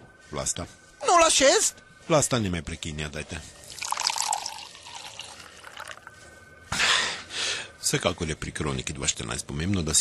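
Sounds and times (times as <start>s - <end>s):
liquid pouring into glass: 3.6s - 6.2s.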